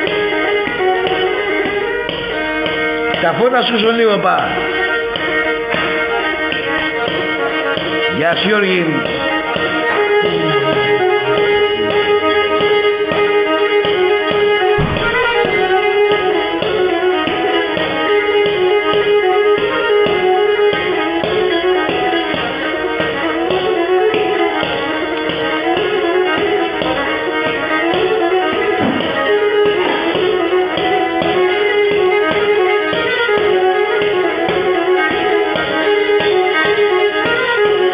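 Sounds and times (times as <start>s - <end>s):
bowed lyra playing lively tune: 0.0s - 37.9s.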